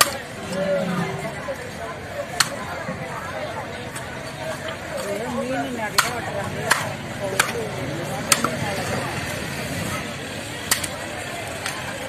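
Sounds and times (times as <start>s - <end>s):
cleaver chopping fish on wood: 6.0s - 7.6s.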